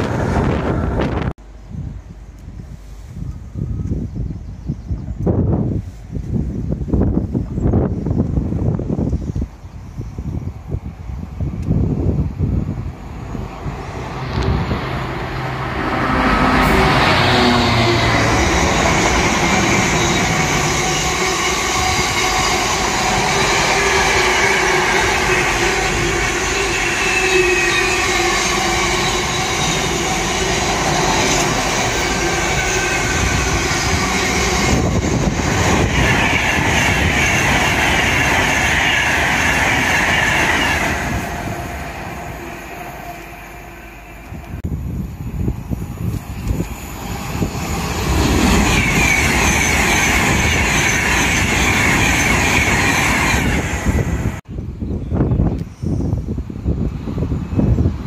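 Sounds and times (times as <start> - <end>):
freight train passing: 0.0 - 4.3, 5.0 - 54.5
high-pitched wheel squeal: 16.2 - 44.6, 46.7 - 54.2.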